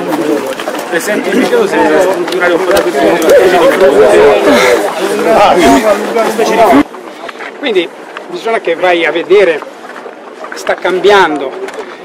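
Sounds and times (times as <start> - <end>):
men talking over one another: 0.0 - 12.0.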